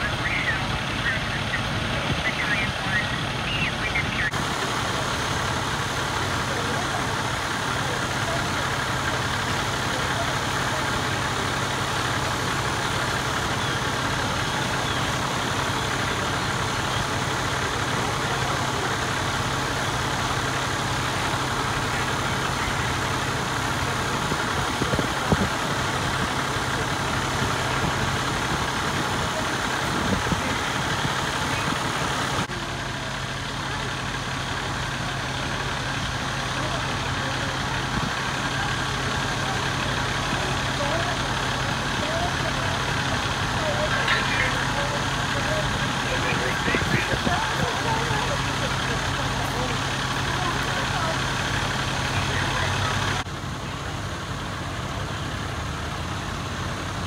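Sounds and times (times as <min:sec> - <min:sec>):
fire truck engine idling: 0:00.0 - 0:57.0.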